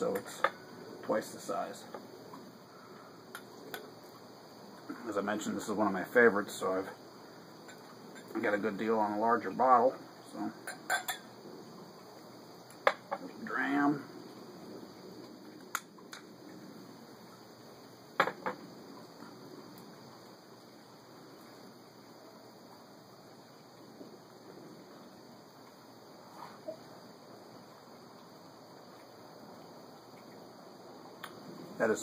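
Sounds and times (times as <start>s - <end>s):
background hiss: 0.0s - 32.0s
glass and bottle set down on table: 18.2s - 18.6s.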